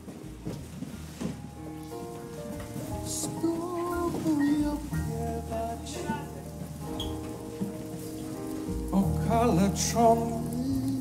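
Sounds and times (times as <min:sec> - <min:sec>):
rain-like patter: 0:00.0 - 0:11.0.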